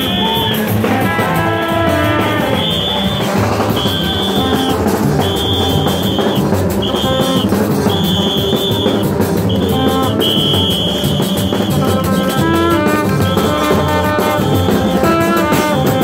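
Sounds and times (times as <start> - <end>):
shrill whistle blasts: 0.0 - 0.8, 1.9 - 12.6
drums: 0.0 - 16.0
low trumpet tones: 0.0 - 16.0.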